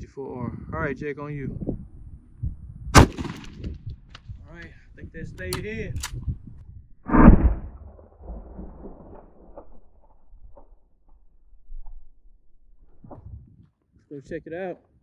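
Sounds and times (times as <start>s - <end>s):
slowed rifle shot boom: 3.0s - 3.8s, 7.1s - 10.7s
low rumble: 6.1s - 13.1s.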